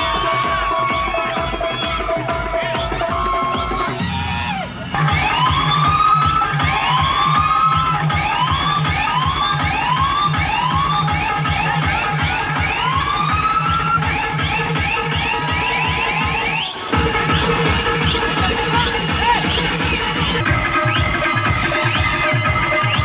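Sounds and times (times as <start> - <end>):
fast bass beat: 0.0 - 23.0.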